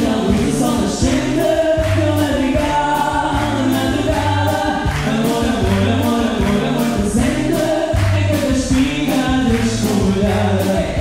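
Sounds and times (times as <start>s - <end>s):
drum kit and guitar: 0.0s - 11.0s
woman and man singing: 0.0s - 11.0s.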